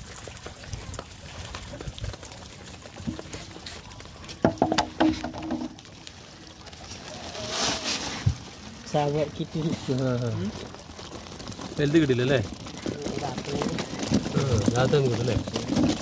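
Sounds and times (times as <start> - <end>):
wet rushing rustle: 0.0 - 16.0
knocks: 4.4 - 5.7.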